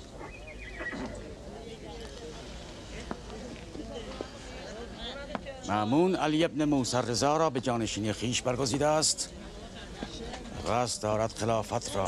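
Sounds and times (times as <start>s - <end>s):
horse neighing: 0.6s - 1.2s.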